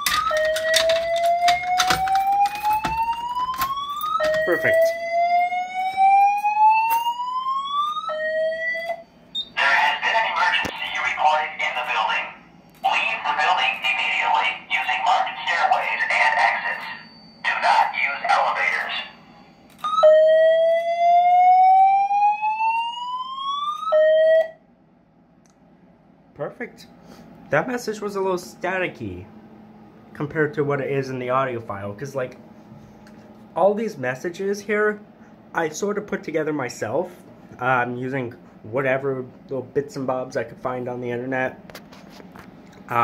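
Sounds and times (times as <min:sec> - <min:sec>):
fire alarm whoop tone: 0:00.0 - 0:10.0, 0:15.8 - 0:24.6
recorded voice announcement: 0:04.2 - 0:05.0, 0:09.4 - 0:19.2, 0:26.4 - 0:26.9, 0:27.5 - 0:29.3, 0:30.1 - 0:32.4, 0:33.6 - 0:41.6.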